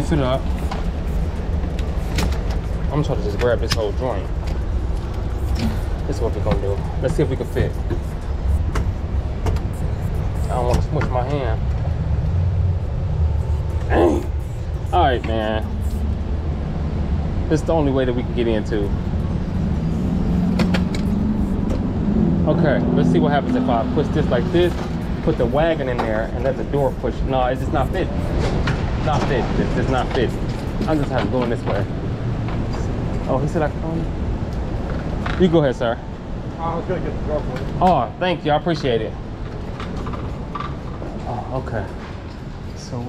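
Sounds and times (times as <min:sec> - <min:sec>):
steady engine hum: 0:00.0 - 0:43.0
street traffic rumble: 0:00.0 - 0:43.0.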